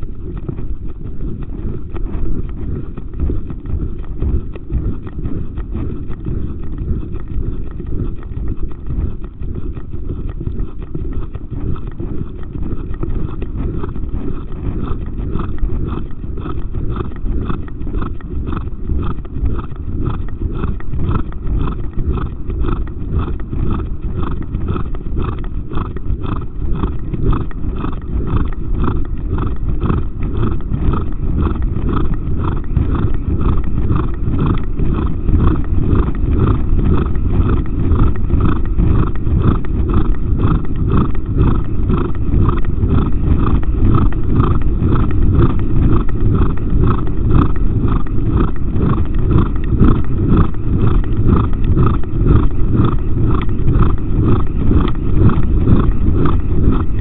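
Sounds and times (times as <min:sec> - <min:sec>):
horse breathing hard: 0:00.0 - 0:57.0
low rumble of movement: 0:00.0 - 0:57.0
wind: 0:00.0 - 0:57.0.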